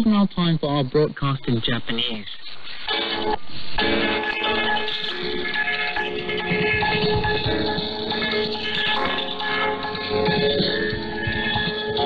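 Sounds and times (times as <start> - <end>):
shortwave radio station music: 0.0 - 12.0.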